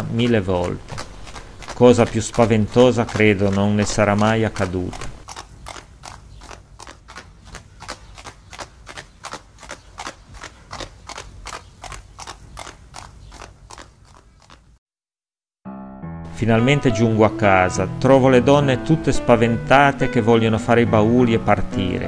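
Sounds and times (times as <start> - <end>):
horse hooves clip-clopping: 0.0 - 14.8.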